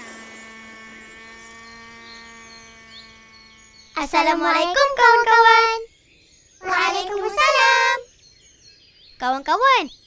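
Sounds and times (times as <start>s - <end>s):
held electronic tone: 0.0s - 5.9s, 6.6s - 8.0s.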